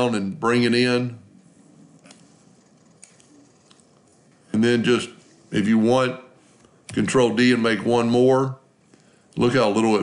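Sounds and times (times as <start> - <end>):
room hiss: 0.0 - 10.0
computer mouse clicks: 2.0 - 4.0.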